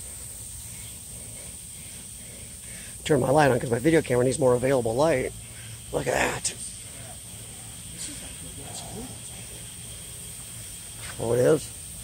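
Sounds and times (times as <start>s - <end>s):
high-pitched hiss: 0.0s - 12.0s
industrial fans low hum: 0.0s - 12.0s.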